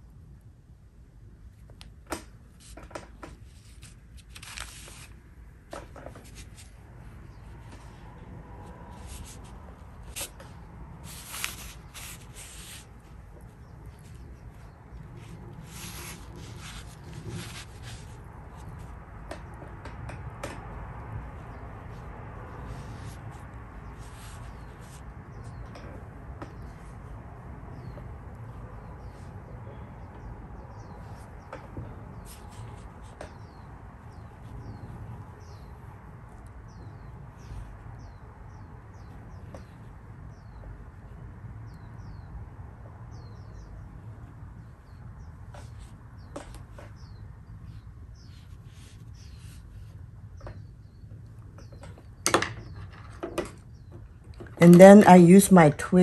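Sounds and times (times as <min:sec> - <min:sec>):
brush rubbing on paper: 0:03.4 - 0:05.1, 0:08.7 - 0:18.9, 0:21.5 - 0:25.6.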